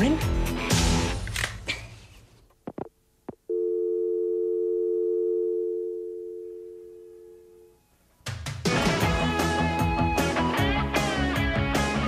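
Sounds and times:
telephone dial tone: 3.5s - 7.3s.

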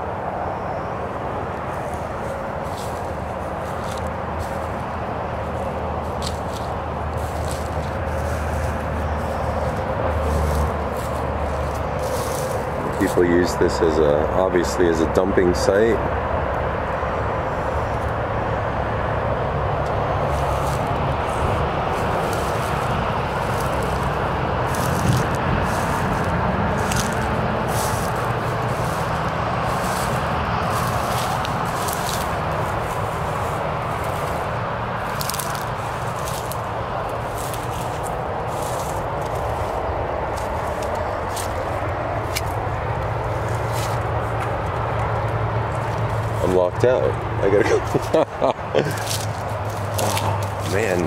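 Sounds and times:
steady rushing noise: 0.0s - 51.0s
footsteps crunching dry grass: 1.4s - 15.9s, 19.6s - 51.0s.

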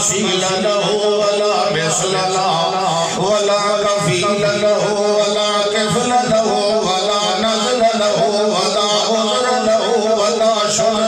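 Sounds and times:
man preaching through amplification: 0.0s - 11.0s.

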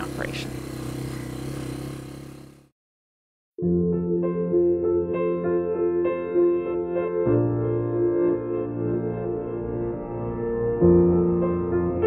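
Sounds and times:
small vehicle engine running: 0.0s - 2.8s.

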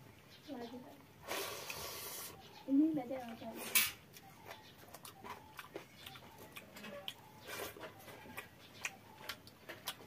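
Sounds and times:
wet chewing mouth clicks: 4.1s - 10.0s.

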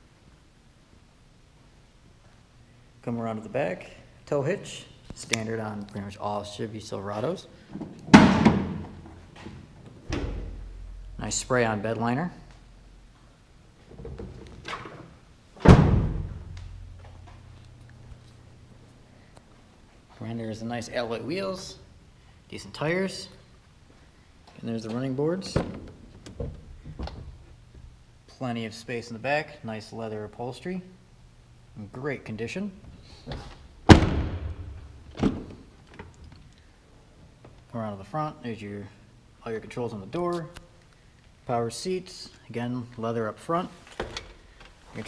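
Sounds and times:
tailgate slamming shut: 15.6s - 16.6s, 33.9s - 35.5s.

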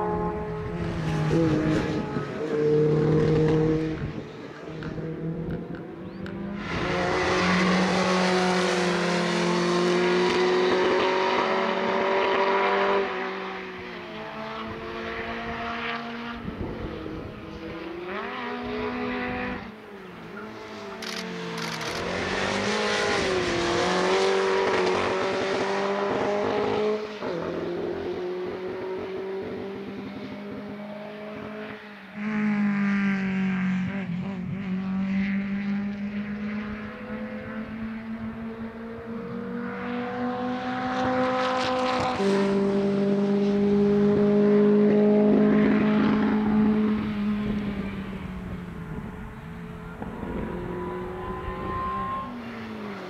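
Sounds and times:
race car engine revving: 0.0s - 19.7s, 20.3s - 53.0s.

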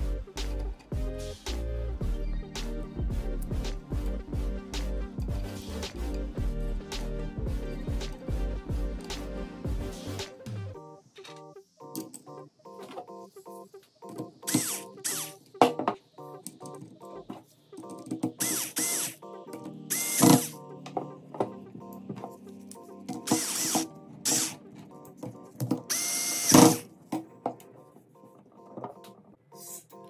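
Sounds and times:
background music: 0.0s - 30.0s
electric screwdriver whining: 14.5s - 15.4s, 18.4s - 19.2s, 19.9s - 20.6s, 23.2s - 24.6s, 25.9s - 26.8s.

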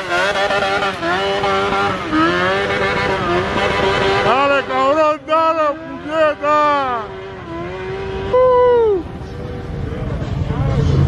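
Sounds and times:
engine revving: 0.0s - 11.0s.

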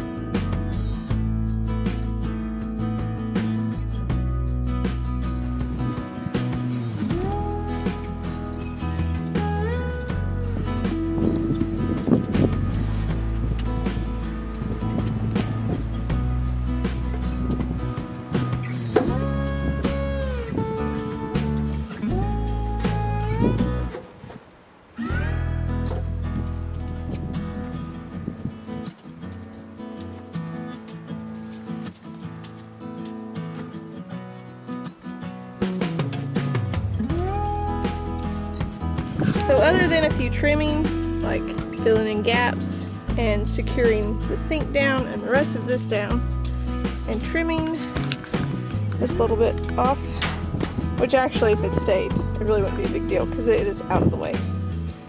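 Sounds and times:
steady bass line: 0.0s - 24.0s, 25.1s - 28.6s, 35.8s - 55.0s
acoustic guitar music: 0.0s - 55.0s.

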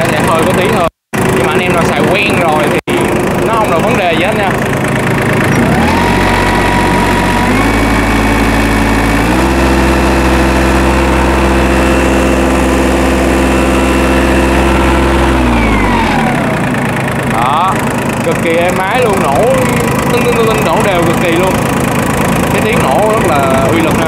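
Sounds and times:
diesel engine revving: 0.0s - 24.0s.

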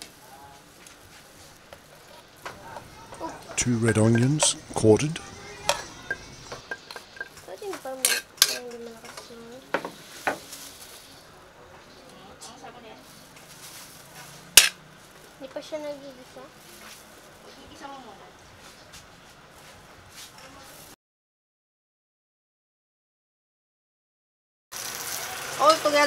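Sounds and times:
faint sizzle of frying: 0.0s - 21.0s, 24.7s - 26.0s
spatula scraping metal wok: 2.5s - 10.8s.

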